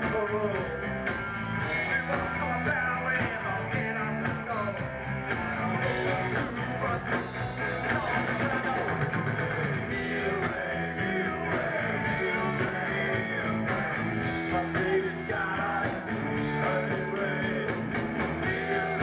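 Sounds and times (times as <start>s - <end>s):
punk rock band playing: 0.0s - 19.0s
person singing: 1.6s - 19.0s.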